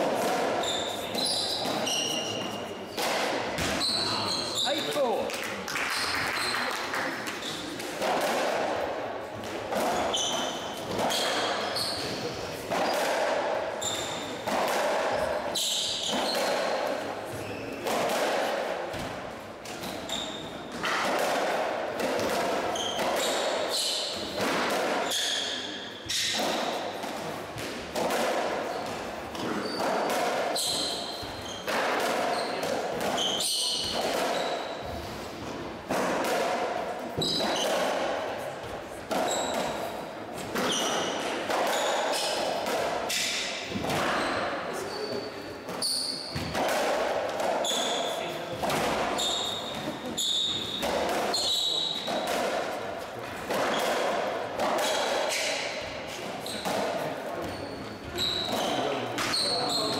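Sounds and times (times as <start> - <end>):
shoe squeaks on wooden floor: 0.6 - 2.6, 3.7 - 5.2, 10.0 - 12.3, 13.8 - 14.4, 15.5 - 16.7, 19.9 - 20.6, 22.7 - 24.3, 29.4 - 30.0, 30.6 - 31.7, 33.2 - 34.8, 37.2 - 37.8, 39.2 - 39.9, 40.6 - 42.3, 44.1 - 46.5, 47.6 - 48.3, 49.2 - 52.1, 57.4 - 59.9.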